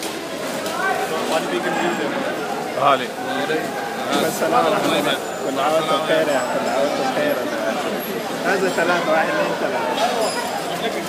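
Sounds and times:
men's voices chattering: 0:00.0 - 0:11.0.

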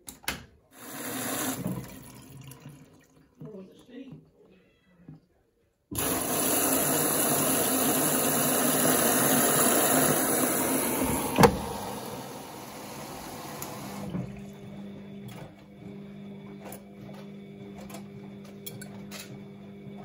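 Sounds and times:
water rushing into washing machine: 0:00.8 - 0:03.6, 0:05.9 - 0:16.7.

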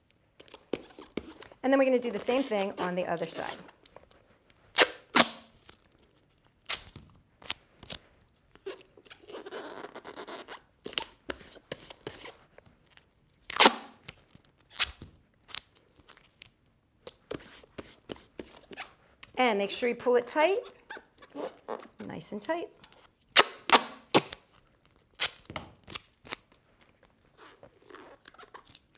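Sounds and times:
duct tape clicks and snaps: 0:25.2 - 0:26.4.

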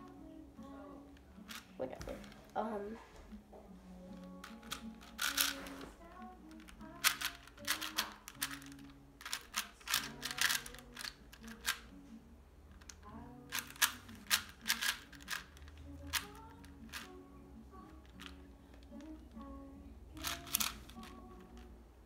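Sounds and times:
faint background music: 0:00.0 - 0:22.0
plastic puzzle cube clicking: 0:01.4 - 0:02.6, 0:04.2 - 0:11.9, 0:12.7 - 0:17.1, 0:18.0 - 0:19.4, 0:20.2 - 0:21.7.

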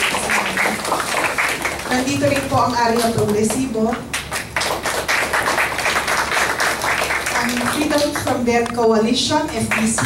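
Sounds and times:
audience clapping: 0:00.0 - 0:08.5, 0:09.5 - 0:10.0.

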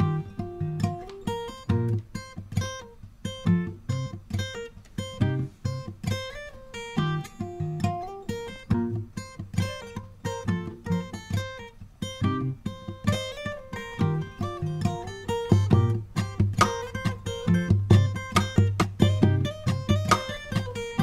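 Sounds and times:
acoustic guitar music: 0:00.0 - 0:21.0.

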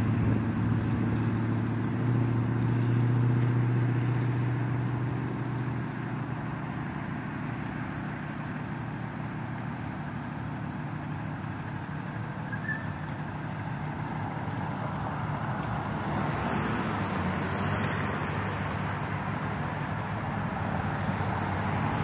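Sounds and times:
ambulance engine idling: 0:04.6 - 0:16.1.

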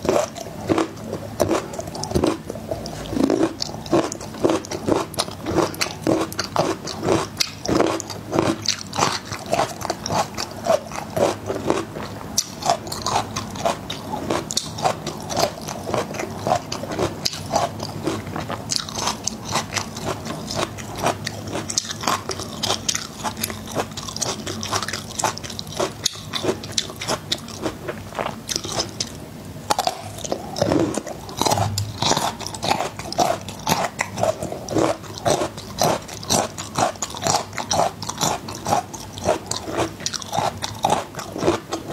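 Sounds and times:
garlic cloves crunching: 0:00.0 - 0:41.9
wet chewing: 0:00.0 - 0:41.9.

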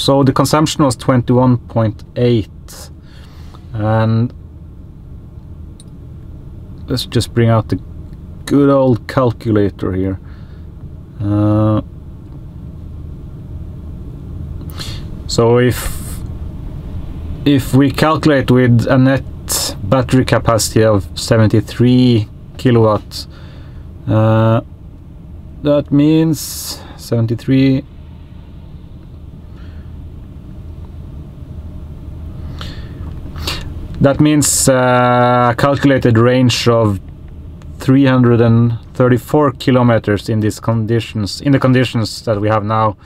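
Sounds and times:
soft hiss of speech: 0:00.0 - 0:03.0, 0:14.7 - 0:16.3, 0:17.4 - 0:23.3
low rumble in car cabin: 0:00.0 - 0:43.0.

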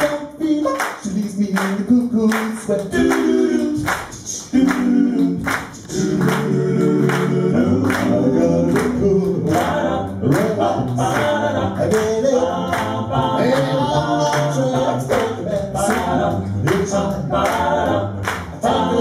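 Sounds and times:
male group singing harmonies: 0:00.0 - 0:19.0.

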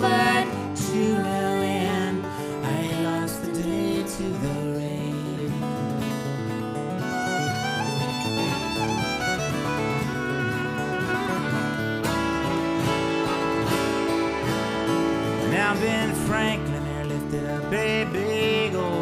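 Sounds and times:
fiddle playing a melody: 0:00.0 - 0:04.4, 0:05.0 - 0:19.0
acoustic guitar accompaniment: 0:00.0 - 0:19.0.

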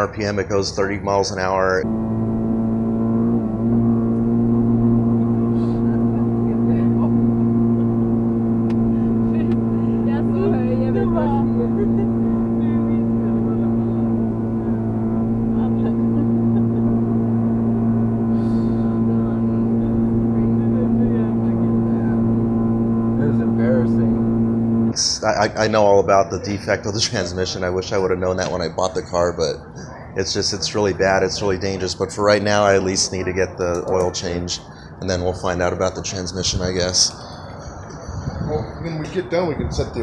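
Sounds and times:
car engine high-pitched drone: 0:00.0 - 0:40.0.

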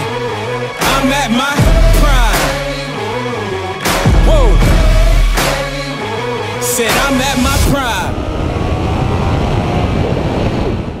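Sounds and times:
wind noise on microphone: 0:07.4 - 0:11.0.

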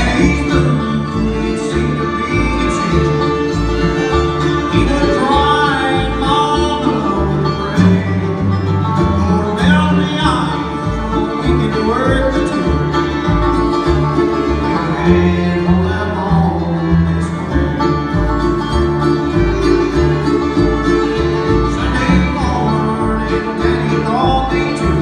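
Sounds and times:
acoustic guitar: 0:00.0 - 0:25.0
banjo: 0:00.0 - 0:25.0
fiddle: 0:00.0 - 0:25.0
mandolin: 0:00.0 - 0:25.0.

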